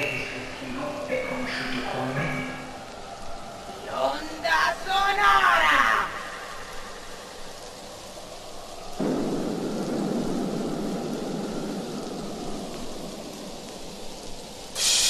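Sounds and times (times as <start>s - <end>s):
bright hiss: 0.0s - 15.0s
rain-like hiss: 0.0s - 15.0s
thunder rumble: 0.0s - 15.0s.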